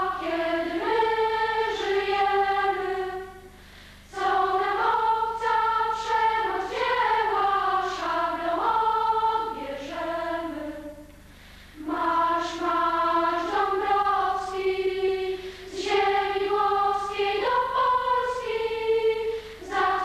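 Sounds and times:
choir singing slow melody: 0.0s - 20.0s.

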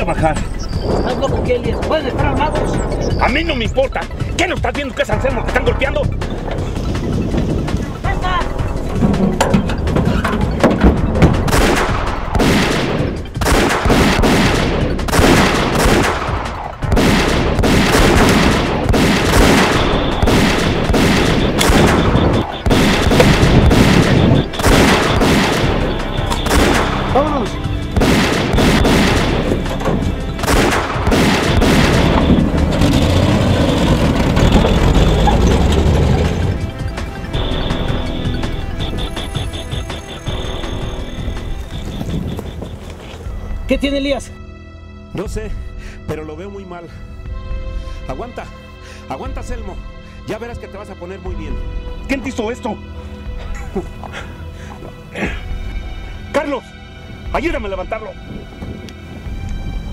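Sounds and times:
background music: 0.0s - 59.9s
gunshots: 11.2s - 35.0s.

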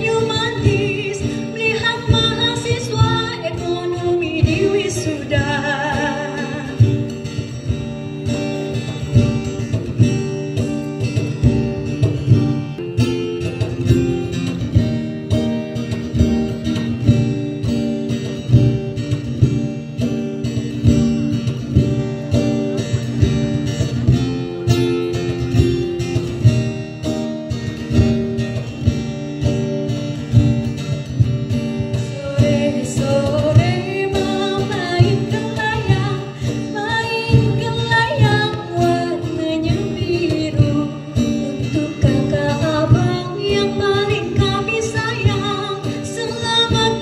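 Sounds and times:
woman singing: 0.0s - 8.9s, 31.8s - 47.0s
plucked string instrument: 0.0s - 47.0s.

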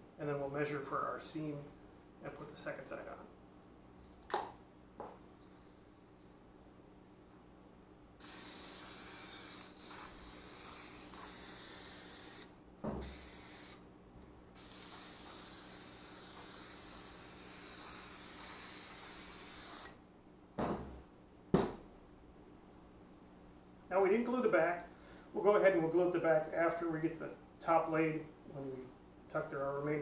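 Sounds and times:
aerosol can spraying: 8.2s - 13.8s, 14.6s - 20.0s
sharp knocks: 20.6s - 21.8s.

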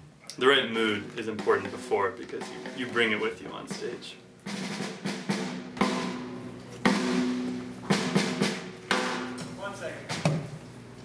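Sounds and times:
drum hits ringing: 0.6s - 10.5s.

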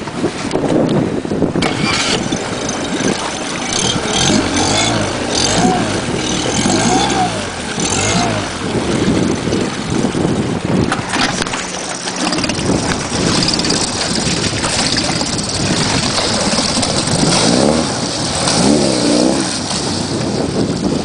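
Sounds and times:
outboard motors running: 0.0s - 21.0s
water rushing past hull: 0.0s - 21.0s.

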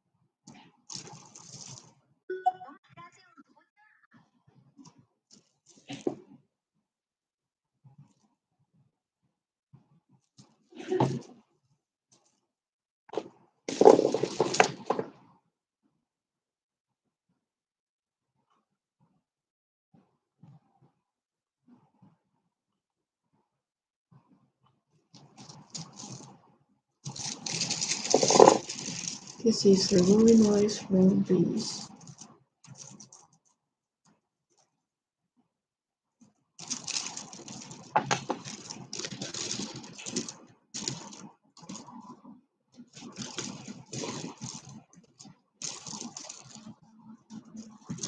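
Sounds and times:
beads clicking and rattling: 0.9s - 1.9s, 25.4s - 26.3s, 27.0s - 30.6s, 31.8s - 33.6s, 36.6s - 42.0s, 42.9s - 46.8s
stone beads clicking and rattling: 27.1s - 30.4s.

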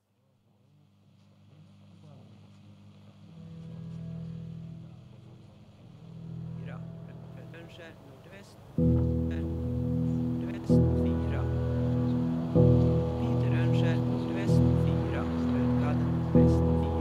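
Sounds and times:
low ambient drone: 3.2s - 17.0s.

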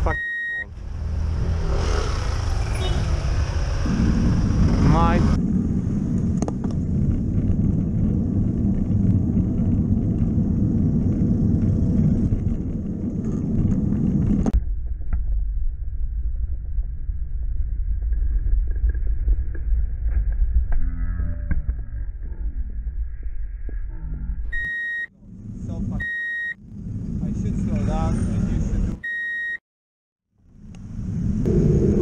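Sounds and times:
low traffic noise: 0.0s - 14.6s
wind noise on microphone: 3.4s - 24.1s.

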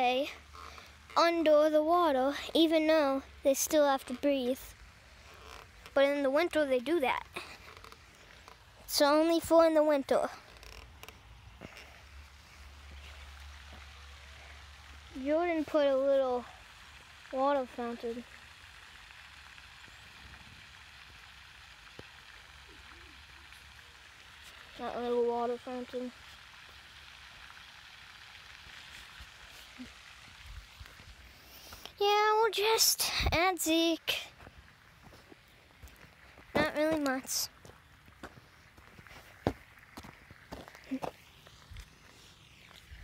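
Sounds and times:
fountain splashing hiss: 0.0s - 43.0s.

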